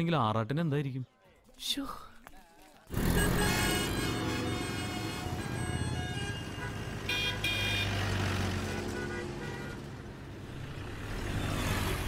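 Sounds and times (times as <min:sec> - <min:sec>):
street traffic engine hum: 0:02.9 - 0:12.0
vehicle horn tooting: 0:03.0 - 0:08.0, 0:08.6 - 0:10.0.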